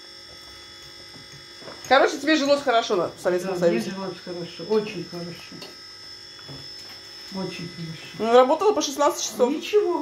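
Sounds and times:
faint electrical buzz with high tones: 0:00.0 - 0:10.0
speech: 0:07.3 - 0:10.0.

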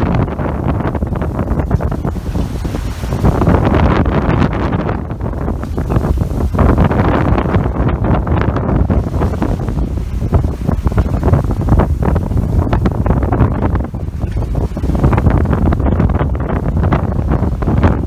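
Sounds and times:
bow wave splashing along hull: 0:00.0 - 0:18.0
strong wind buffeting microphone: 0:00.0 - 0:18.0.

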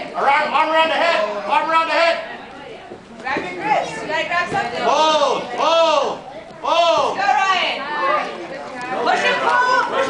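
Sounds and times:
children chattering: 0:00.0 - 0:10.0.

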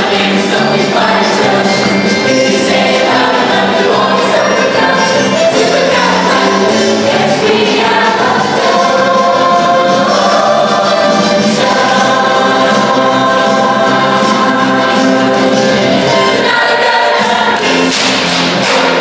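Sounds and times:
choir singing in harmony: 0:00.0 - 0:19.0.

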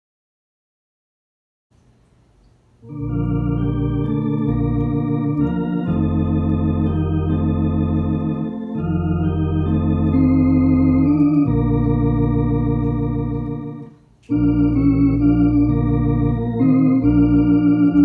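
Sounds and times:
electronic organ playing hymn chords: 0:02.8 - 0:18.0
low organ bass line: 0:02.8 - 0:18.0.

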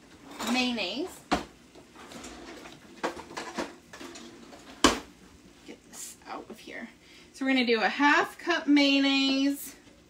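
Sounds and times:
kitchen utensils clattering: 0:00.2 - 0:01.0, 0:02.0 - 0:05.1.

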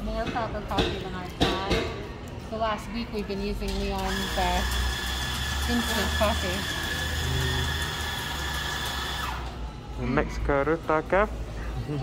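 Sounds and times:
high-pitched machine whine: 0:04.3 - 0:11.2.

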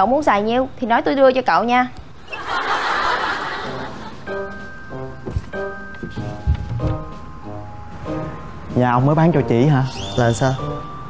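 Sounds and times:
canned crowd laughter: 0:02.2 - 0:04.3
background music: 0:02.2 - 0:11.0.

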